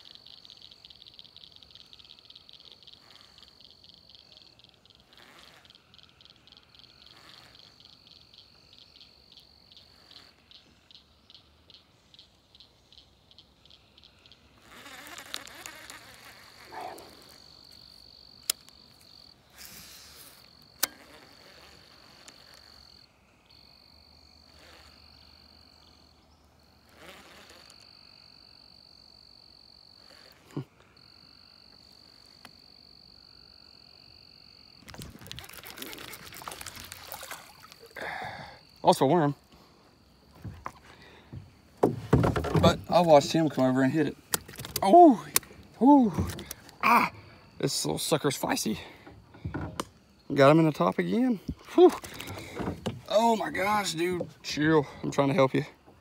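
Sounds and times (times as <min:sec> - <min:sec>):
pulsed frog calls: 0:00.0 - 0:23.6, 0:34.8 - 0:39.4, 0:40.0 - 0:49.8, 0:51.0 - 0:55.6
high-pitched insect trill: 0:00.0 - 0:55.7.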